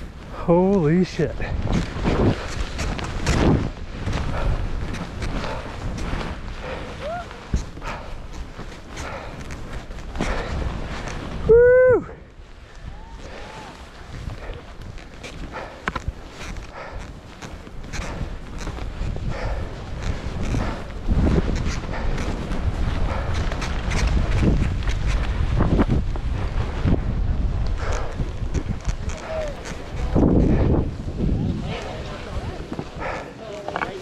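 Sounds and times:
skis swishing through snow: 0:00.0 - 0:34.0
wind rumbling on microphone: 0:00.0 - 0:34.0.

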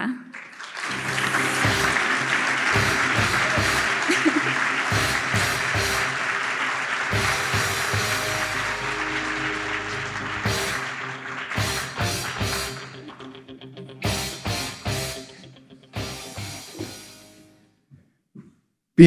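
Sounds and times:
audience applauding: 0:00.0 - 0:16.5
music with drums: 0:01.4 - 0:06.2, 0:07.1 - 0:08.9, 0:10.4 - 0:10.9, 0:11.6 - 0:12.8, 0:14.0 - 0:15.2, 0:16.0 - 0:17.3.

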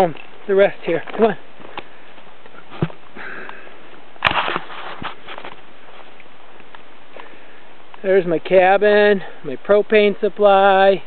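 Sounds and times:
footsteps on forest floor: 0:00.0 - 0:08.0.

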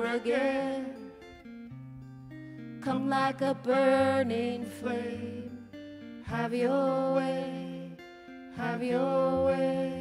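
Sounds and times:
person singing: 0:00.0 - 0:01.1, 0:02.8 - 0:05.6, 0:06.2 - 0:10.0
acoustic guitar strumming: 0:00.0 - 0:10.0.

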